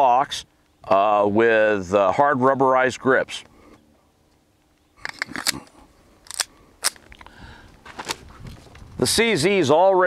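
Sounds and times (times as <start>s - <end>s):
pistol metallic clicks: 5.0s - 7.2s.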